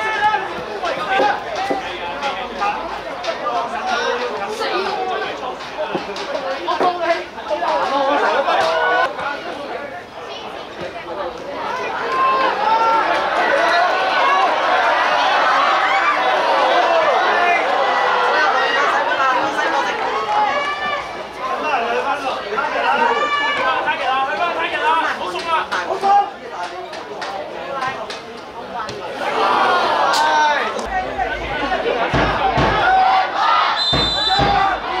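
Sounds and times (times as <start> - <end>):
voices shouting and calling: 0.0 - 35.0.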